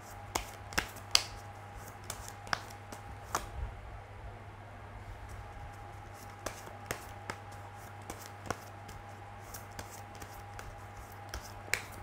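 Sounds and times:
steady low hum: 0:00.0 - 0:12.0
cards shuffling and snapping: 0:00.3 - 0:03.5, 0:05.7 - 0:12.0.

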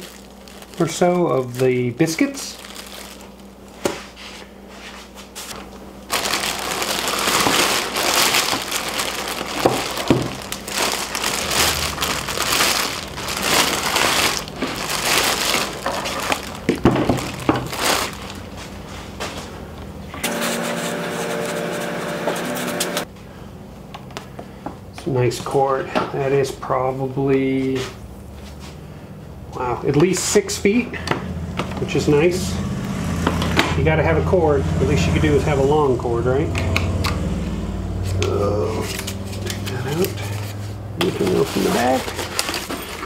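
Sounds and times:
plastic bag crinkling: 0:00.0 - 0:03.8, 0:05.4 - 0:19.5, 0:38.8 - 0:43.0.

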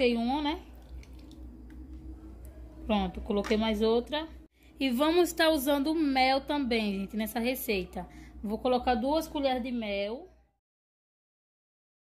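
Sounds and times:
low steady hum: 0:00.0 - 0:10.6.

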